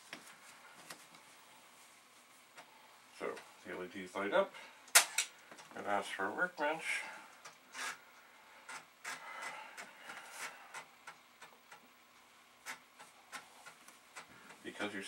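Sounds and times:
soft rubbing sound: 0:00.0 - 0:02.6.

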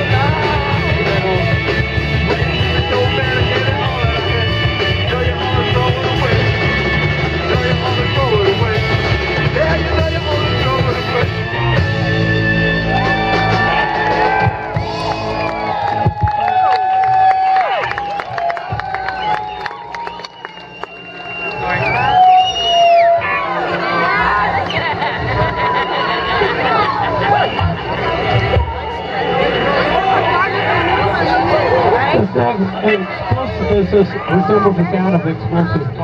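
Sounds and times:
crowd cheering and whooping: 0:00.0 - 0:04.5, 0:11.1 - 0:35.8
live rock band playing: 0:00.0 - 0:16.4.

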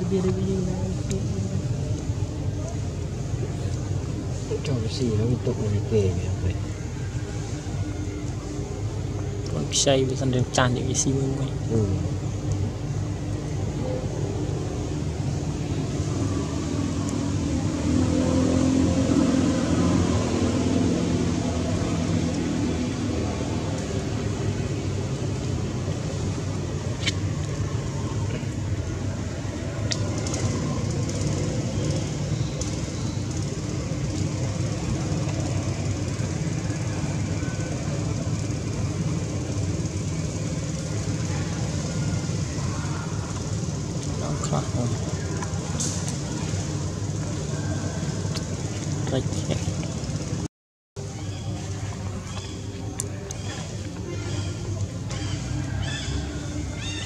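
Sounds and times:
faint distant voices: 0:00.0 - 0:50.3, 0:51.0 - 0:57.0
traffic engine rumble: 0:00.0 - 0:57.0.

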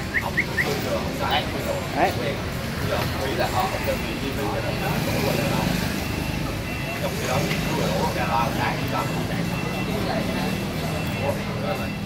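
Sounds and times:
indistinct voices talking: 0:00.0 - 0:12.0
street traffic hum: 0:00.0 - 0:12.0.

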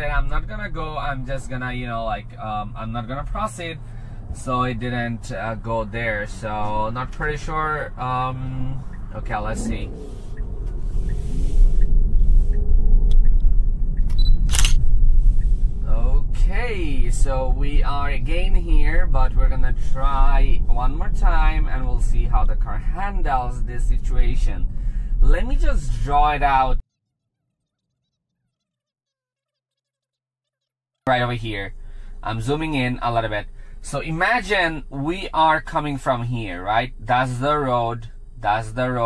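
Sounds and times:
road and wind noise: 0:00.0 - 0:26.8.

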